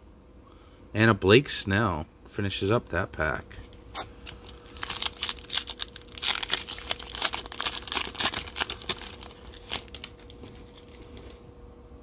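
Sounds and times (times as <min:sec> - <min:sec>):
plastic foil wrapper tearing: 0:03.9 - 0:11.4.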